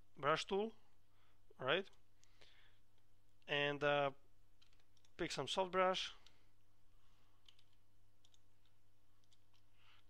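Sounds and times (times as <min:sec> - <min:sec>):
computer mouse clicks: 0:07.4 - 0:10.0.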